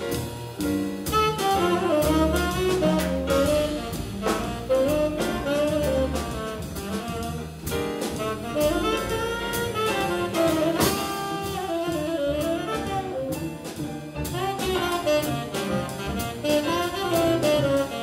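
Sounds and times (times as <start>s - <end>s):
drum kit with cymbals: 0.0s - 18.0s
plucked double bass: 0.0s - 18.0s
saxophone melody: 1.1s - 18.0s.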